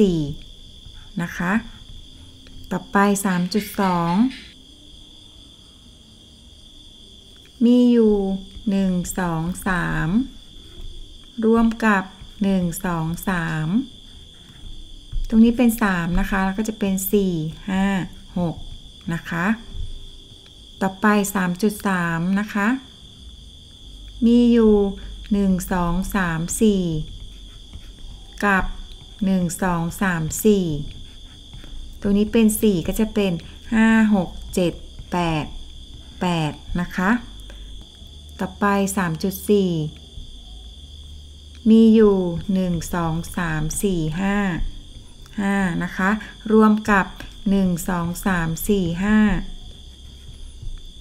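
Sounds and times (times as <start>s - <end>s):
woman speaking: 0.0s - 1.9s, 2.6s - 4.6s, 7.6s - 10.5s, 11.3s - 14.0s, 15.2s - 19.8s, 20.8s - 22.9s, 24.2s - 27.2s, 28.4s - 31.0s, 32.0s - 37.6s, 38.4s - 40.0s, 41.6s - 49.6s
woman counting aloud: 2.7s - 4.5s, 32.0s - 35.5s, 36.2s - 37.3s, 41.7s - 44.7s, 45.4s - 49.5s.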